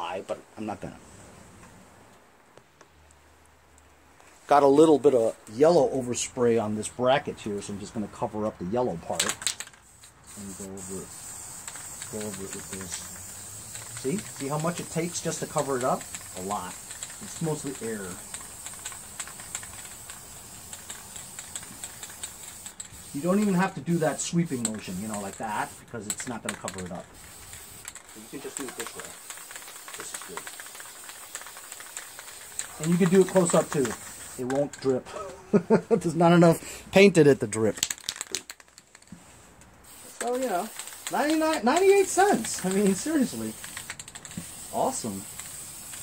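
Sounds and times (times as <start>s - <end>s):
spray can clicks and ticks: 9.1s - 34.9s, 39.9s - 46.0s
spray can hiss: 9.1s - 34.9s, 39.8s - 46.0s.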